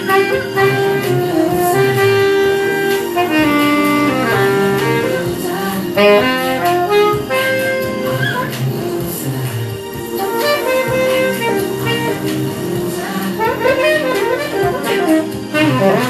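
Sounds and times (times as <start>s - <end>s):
backing track music: 0.0s - 16.0s
saxophone melody: 0.0s - 16.0s.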